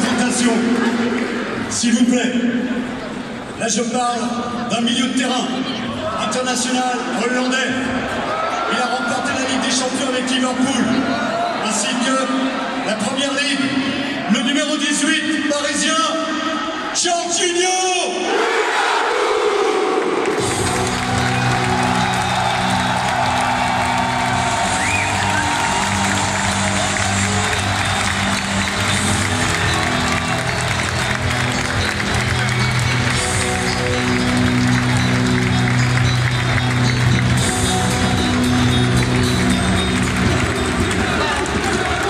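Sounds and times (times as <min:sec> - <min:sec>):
crowd cheering and applauding: 0:00.0 - 0:02.0, 0:19.8 - 0:42.0
music over loudspeakers: 0:20.3 - 0:42.0.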